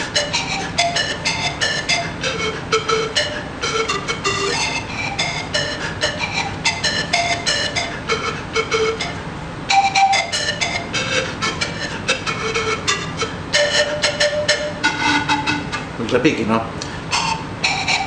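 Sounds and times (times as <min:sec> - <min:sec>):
panpipe melody: 0:00.0 - 0:16.0, 0:17.0 - 0:18.0.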